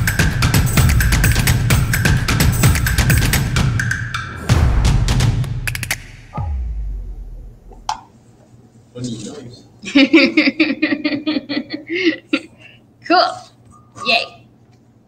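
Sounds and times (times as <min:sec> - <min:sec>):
music with percussion beat: 0:00.0 - 0:08.0
deep falling boom: 0:04.4 - 0:07.9.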